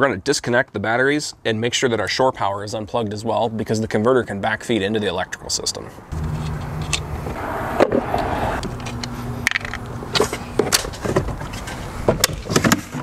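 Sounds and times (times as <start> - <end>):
steady low hum: 6.1 - 12.1.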